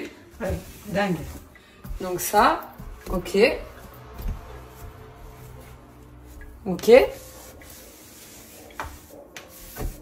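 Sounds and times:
sponge rubbing on metal sink: 6.8s - 10.0s.

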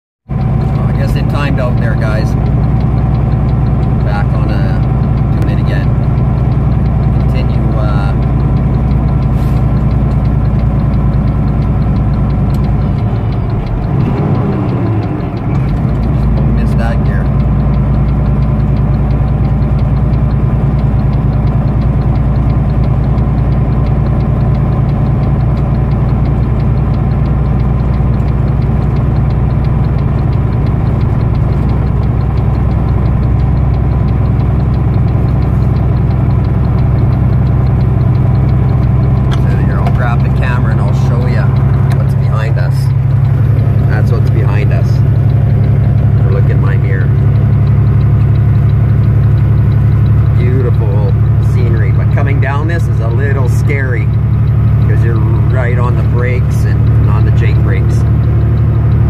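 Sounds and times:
diesel truck engine drone: 0.3s - 59.0s.

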